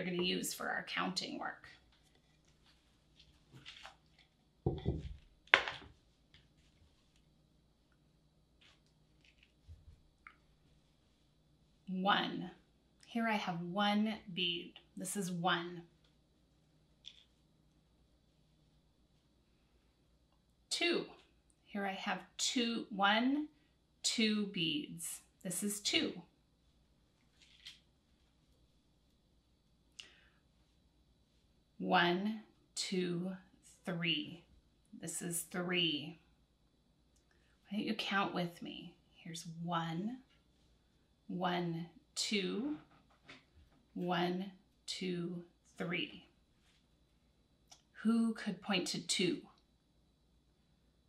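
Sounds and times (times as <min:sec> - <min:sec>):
soft rustle: 0:01.3 - 0:11.9, 0:26.5 - 0:29.2, 0:29.9 - 0:31.8, 0:40.1 - 0:41.3, 0:45.4 - 0:47.4
dull thump: 0:04.7 - 0:05.2
sharp wooden knock: 0:04.7 - 0:05.7.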